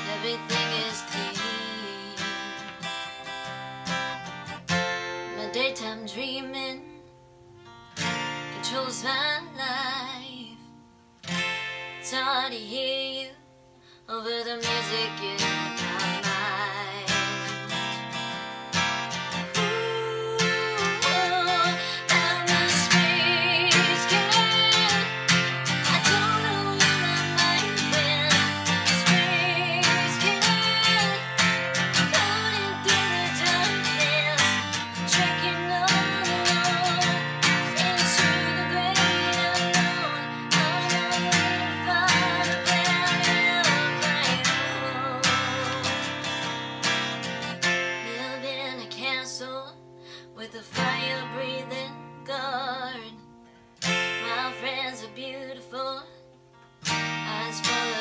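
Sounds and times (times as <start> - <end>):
acoustic guitar strummed: 0.0 - 58.0
woman singing: 0.0 - 58.0.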